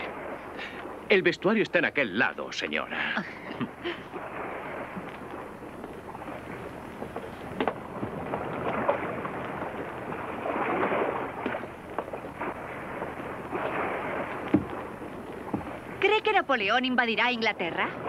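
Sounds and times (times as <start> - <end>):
wind and sea waves rushing: 0.0 - 18.0
short knocks on boat: 7.0 - 9.4, 13.6 - 15.8.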